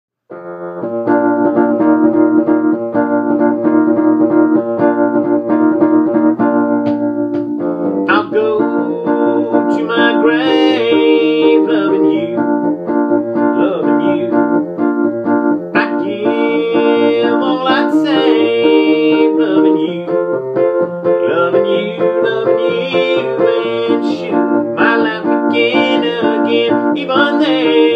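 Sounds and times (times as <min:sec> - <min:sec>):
electric piano chords: 0:00.3 - 0:27.9
man singing: 0:08.1 - 0:12.8, 0:13.4 - 0:14.6, 0:15.7 - 0:20.4, 0:21.2 - 0:27.9.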